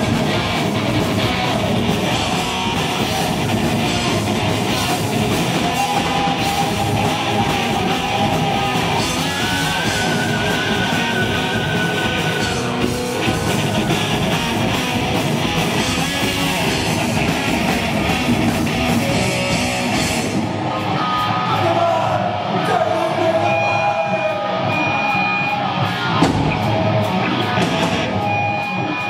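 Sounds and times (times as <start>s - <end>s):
distorted electric guitars: 0.0s - 29.0s
drums and cymbal hits: 0.0s - 29.0s
heavy metal band playing live: 0.0s - 29.0s.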